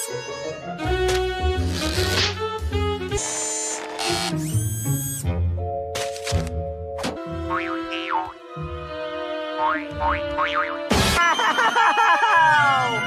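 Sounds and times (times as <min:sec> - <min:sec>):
cartoon music: 0:07.3 - 0:08.4, 0:09.5 - 0:13.0
boing pitch glides: 0:07.5 - 0:08.3, 0:09.6 - 0:10.8.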